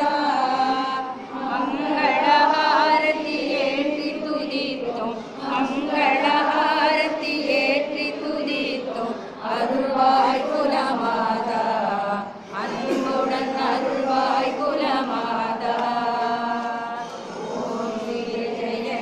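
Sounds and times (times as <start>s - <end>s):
women chanting prayer together: 0.0s - 19.0s.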